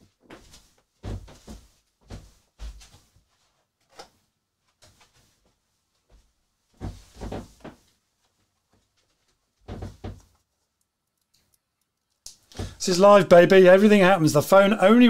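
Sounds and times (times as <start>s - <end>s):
bumps and knocks in a room: 0.0s - 3.6s, 4.7s - 10.4s.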